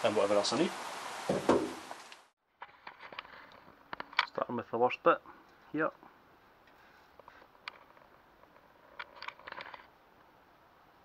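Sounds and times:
steady background hiss: 0:00.0 - 0:02.3.

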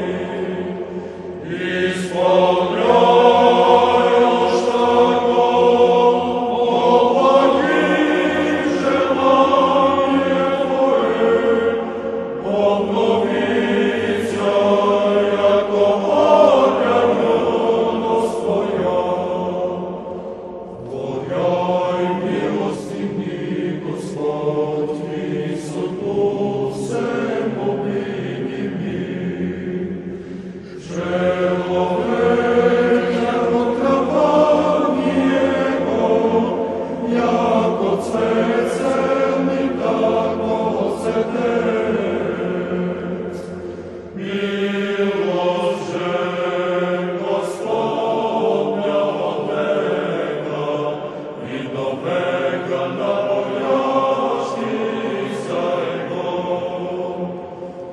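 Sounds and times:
choir chanting: 0:00.0 - 0:57.9.

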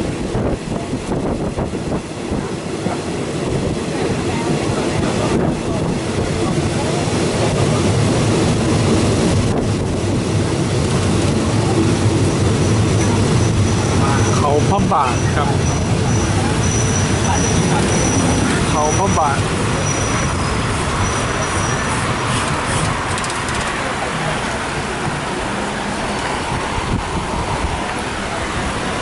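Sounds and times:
rushing air: 0:00.0 - 0:29.0
train rumbling on rails: 0:00.0 - 0:29.0.

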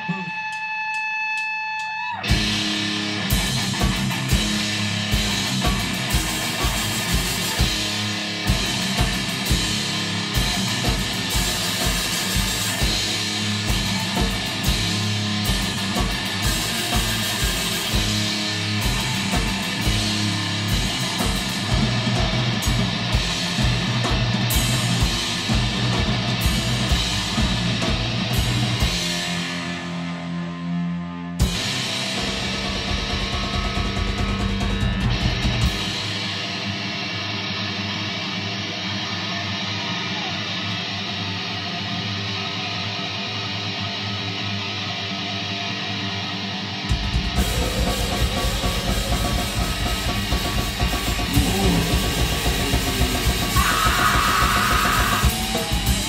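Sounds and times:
drum kit: 0:00.0 - 0:30.4, 0:31.4 - 0:37.1, 0:46.9 - 0:56.0
distorted electric guitar: 0:00.0 - 0:56.0.

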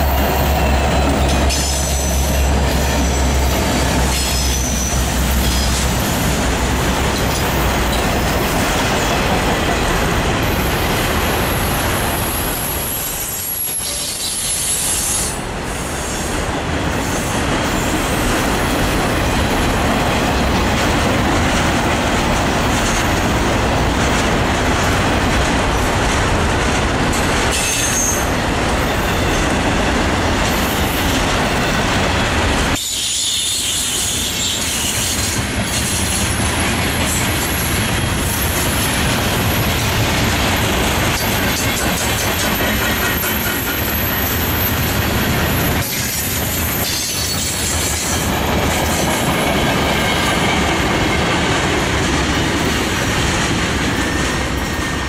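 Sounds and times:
diesel locomotive engine drone: 0:00.0 - 0:55.0
wheel-on-rail roar: 0:00.0 - 0:55.0.

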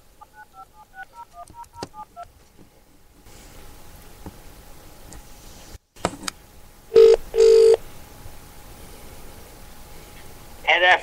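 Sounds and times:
telephone line beeps: 0:07.0 - 0:07.8.

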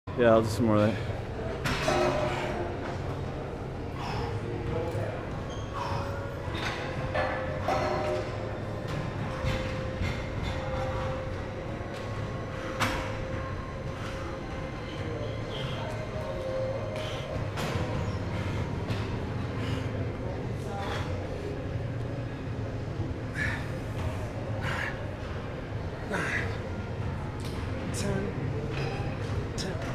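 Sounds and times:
distant indistinct voices: 0:00.9 - 0:29.9.

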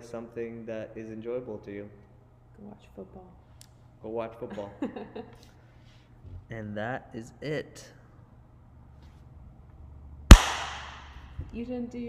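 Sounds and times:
sharp loud bang: 0:10.3 - 0:11.2.

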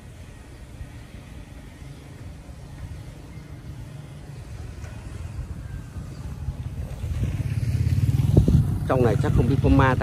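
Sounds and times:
scooter engine passing: 0:02.7 - 0:10.0.

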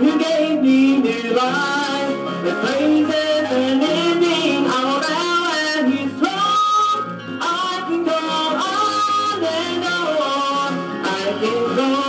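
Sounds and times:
guitar accompaniment: 0:00.0 - 0:12.0
person singing gospel song: 0:00.0 - 0:12.0.

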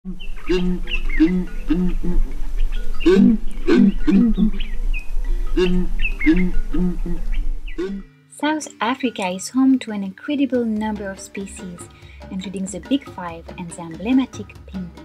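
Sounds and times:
small birds chirping: 0:00.1 - 0:08.1
steady low hum: 0:00.1 - 0:08.1.

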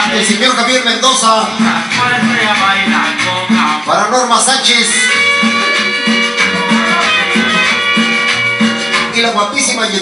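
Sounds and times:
latin dance music: 0:00.0 - 0:10.0
steady bass beat: 0:01.0 - 0:04.0, 0:04.9 - 0:09.1.

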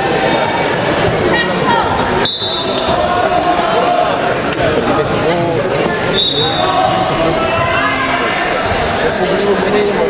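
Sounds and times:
people calling out: 0:01.3 - 0:04.4.

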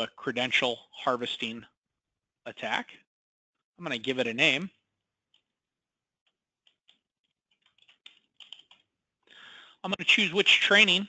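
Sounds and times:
typing on computer keyboard: 0:06.6 - 0:08.9.

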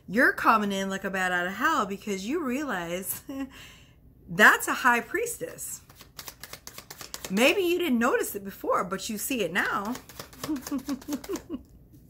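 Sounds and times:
cards being shuffled: 0:05.8 - 0:07.8, 0:09.4 - 0:11.6
woman giggling softly: 0:10.4 - 0:11.9.

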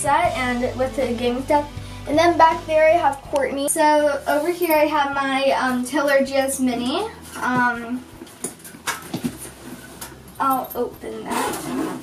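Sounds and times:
zipper clicks: 0:11.2 - 0:12.0.

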